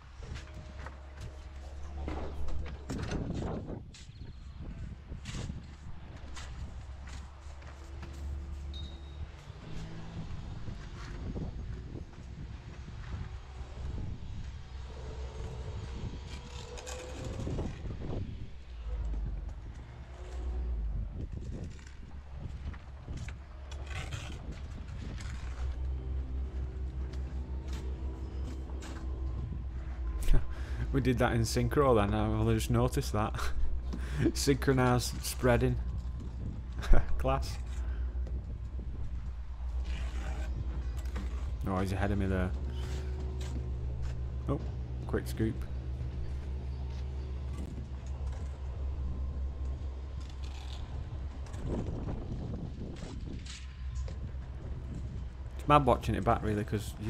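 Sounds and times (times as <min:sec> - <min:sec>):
low background rumble: 0:00.0 - 0:57.0.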